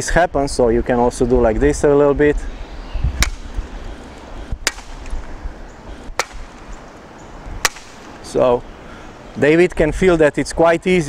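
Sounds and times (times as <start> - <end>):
tennis racket smacking net: 3.2 - 3.6, 4.7 - 5.3, 6.2 - 6.7, 7.6 - 8.3.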